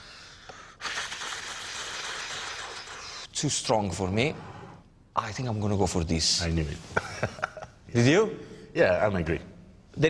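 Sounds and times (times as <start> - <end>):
person slurping wine: 0.7 - 3.3.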